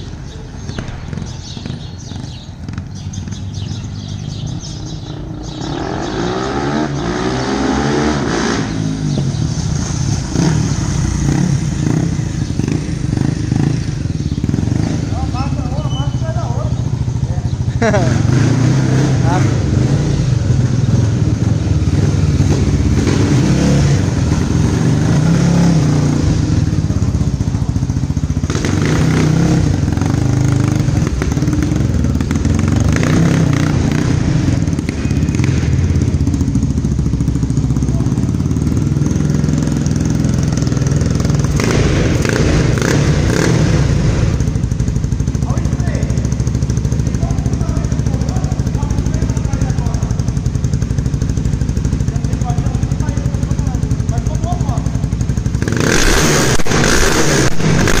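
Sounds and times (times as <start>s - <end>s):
motorcycle engine running at low revs: 0.0s - 58.0s.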